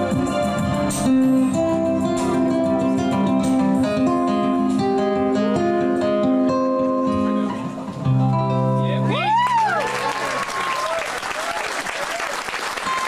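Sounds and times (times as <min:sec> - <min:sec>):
acoustic guitar melody: 0:00.0 - 0:10.3.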